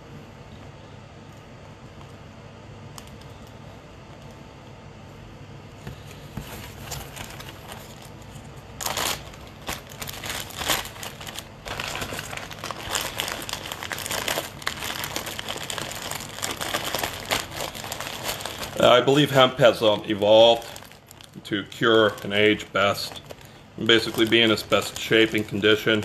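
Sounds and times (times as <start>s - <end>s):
plastic bag crinkling: 6.0s - 26.0s.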